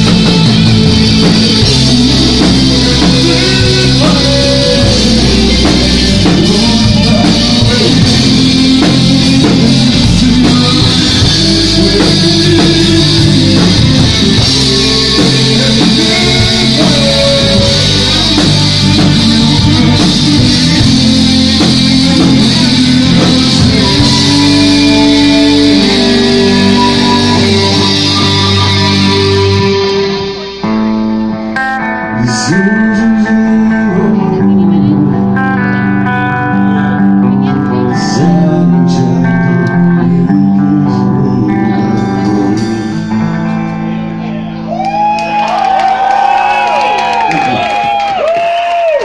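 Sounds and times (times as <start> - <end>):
electric guitar ringing notes: 0.0 - 47.9
live rock band playing: 0.0 - 49.0.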